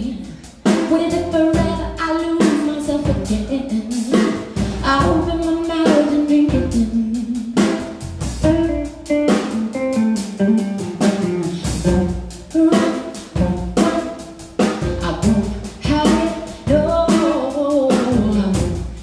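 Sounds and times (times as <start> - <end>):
woman singing: 0.0 - 8.8, 10.2 - 19.0
drum kit beat: 0.0 - 19.0
electric bass: 0.0 - 19.0
electric guitar: 8.4 - 15.4.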